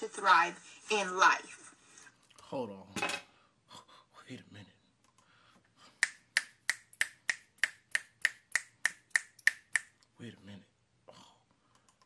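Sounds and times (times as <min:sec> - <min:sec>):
man snapping fingers: 0:06.0 - 0:10.0.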